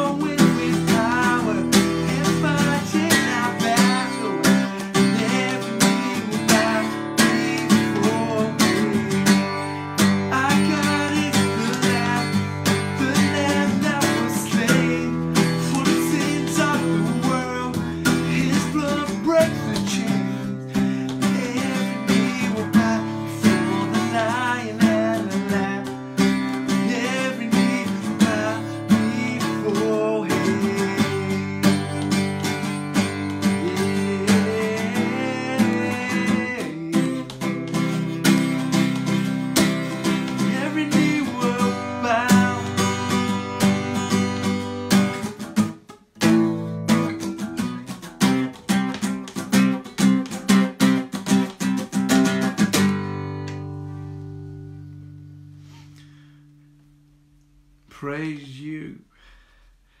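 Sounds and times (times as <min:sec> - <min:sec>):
man singing: 0:00.0 - 0:44.8, 0:57.9 - 0:59.1
acoustic guitar strumming: 0:00.0 - 0:59.4.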